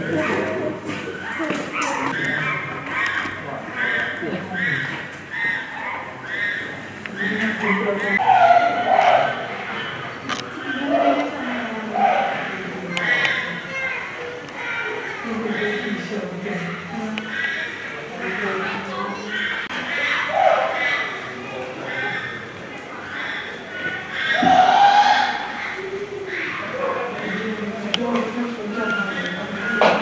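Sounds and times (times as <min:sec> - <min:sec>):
chimpanzee calling: 0:00.0 - 0:27.8
people's voices: 0:00.0 - 0:30.0.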